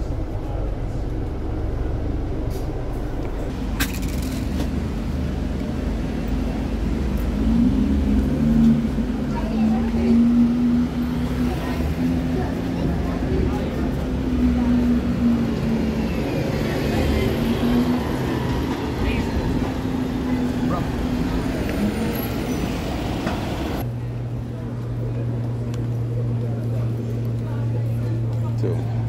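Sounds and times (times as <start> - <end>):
low steady hum: 0.0 - 4.4
vehicle engines idling and passing: 0.0 - 29.0.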